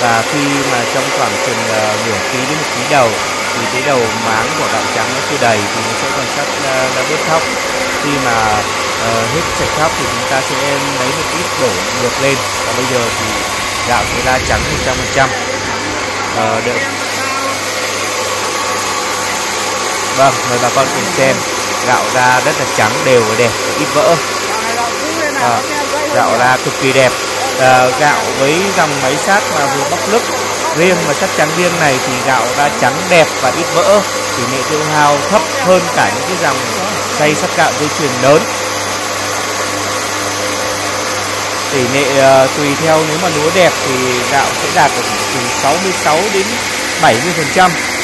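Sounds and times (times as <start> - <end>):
rice mill whirring hum: 0.0 - 48.0.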